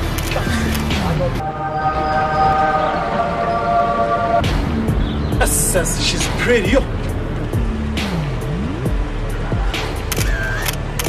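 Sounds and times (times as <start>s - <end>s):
loud held chord: 1.4s - 5.2s.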